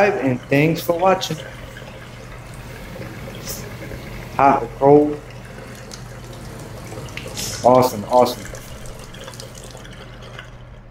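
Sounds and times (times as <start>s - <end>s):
water running from faucet into sink: 0.0s - 10.8s.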